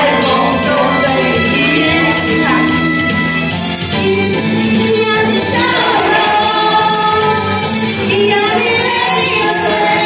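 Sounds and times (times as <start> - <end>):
karaoke backing track: 0.0 - 10.0
women singing into microphones: 3.9 - 10.0.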